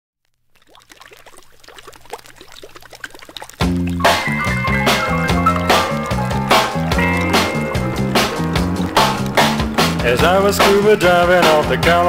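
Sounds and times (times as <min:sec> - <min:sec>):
bubbling water blips: 0:00.2 - 0:12.0
band playing loudly: 0:04.0 - 0:12.0.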